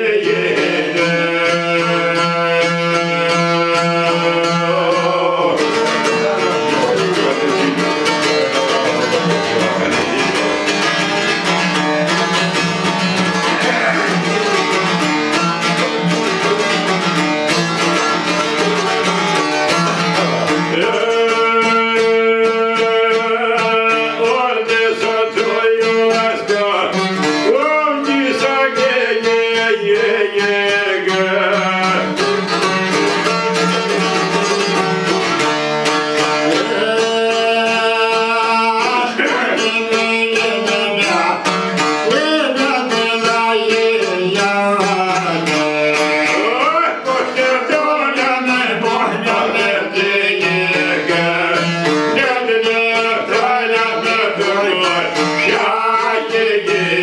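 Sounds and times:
man singing ornamented line: 0.0s - 34.6s, 35.8s - 57.0s
plucked lutes playing folk tune: 0.0s - 57.0s.

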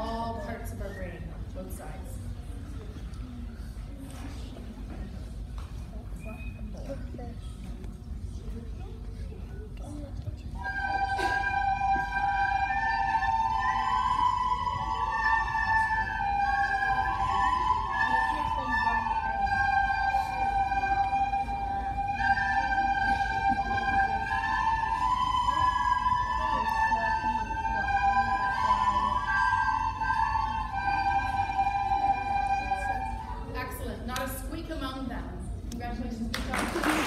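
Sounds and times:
children playing recorders: 10.6s - 33.6s.

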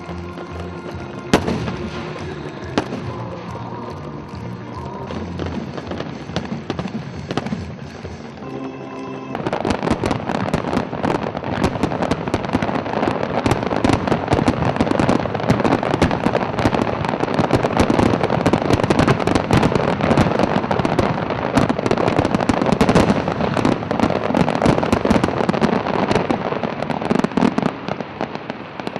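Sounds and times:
music: 0.0s - 10.8s
firework bangs and crackles: 0.0s - 28.9s.

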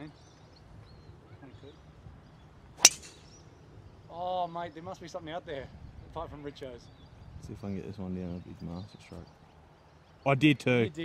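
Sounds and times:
golf driver striking ball: 2.8s - 3.3s.

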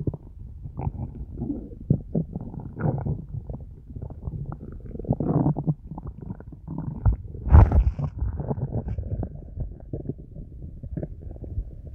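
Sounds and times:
stomach gurgling and growling: 0.0s - 11.9s.

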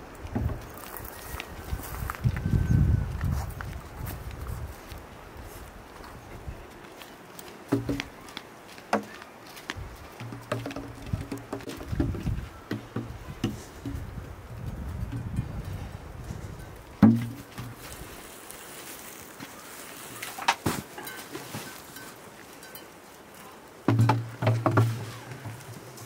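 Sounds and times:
footsteps on dirt path: 0.0s - 26.0s.

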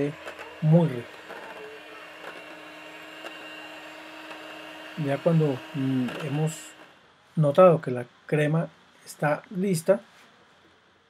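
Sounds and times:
electric hand mixer whirring: 0.0s - 7.0s.

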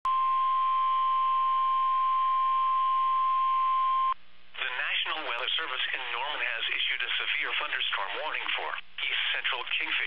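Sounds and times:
loud steady alarm beep: 0.1s - 4.2s.

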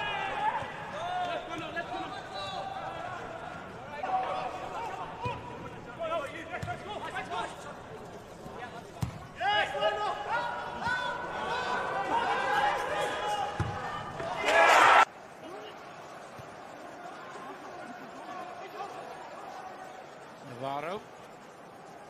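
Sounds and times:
players shouting in stadium: 9.4s - 15.1s.

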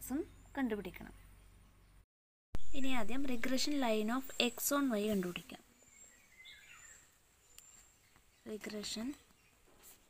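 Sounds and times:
woman speaking: 0.0s - 1.2s, 2.7s - 5.6s, 8.5s - 9.2s.

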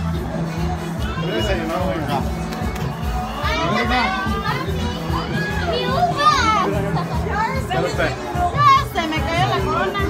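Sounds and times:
music playing: 0.0s - 10.0s
people talking and exclaiming: 0.0s - 10.0s.

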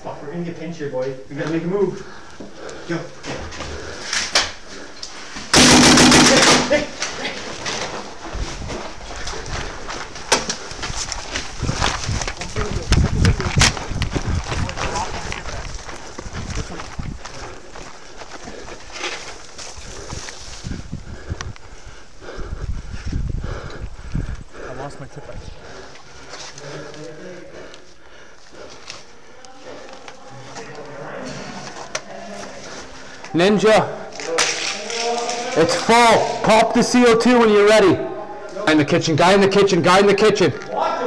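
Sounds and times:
players running: 5.1s - 21.8s.

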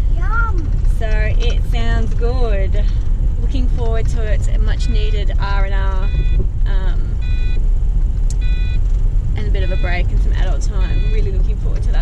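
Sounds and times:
car cabin road rumble: 0.0s - 12.0s
short electronic beeps: 5.9s - 6.4s, 7.2s - 7.6s, 8.4s - 8.8s, 10.8s - 11.3s.

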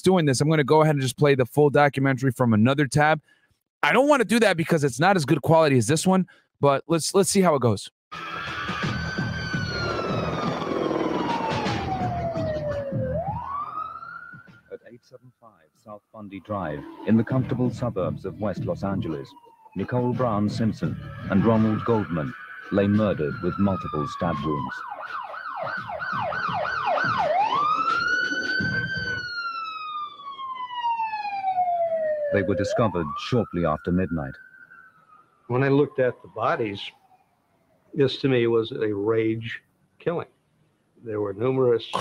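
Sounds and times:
siren wailing: 8.1s - 14.8s, 16.3s - 38.0s.

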